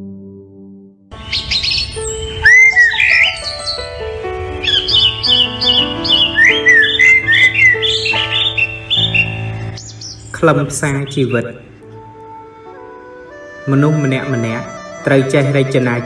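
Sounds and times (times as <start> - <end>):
soft music with low held notes: 0.0 - 16.0
rapid high chirping: 1.1 - 11.5.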